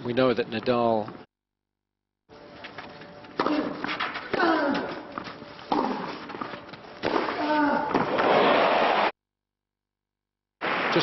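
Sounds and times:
tennis racket hitting ball: 0:03.4 - 0:08.3.

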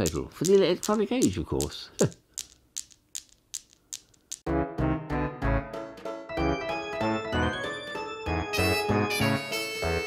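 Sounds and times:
newton's cradle balls clicking: 0:00.0 - 0:04.5.

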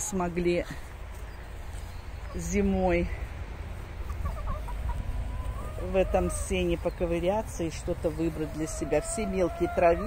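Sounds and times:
hens clucking: 0:02.2 - 0:10.0.

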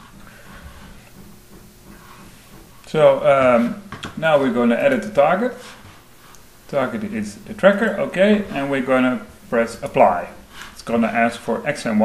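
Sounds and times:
microphone hiss: 0:00.0 - 0:12.0
steady low hum: 0:00.0 - 0:12.0.

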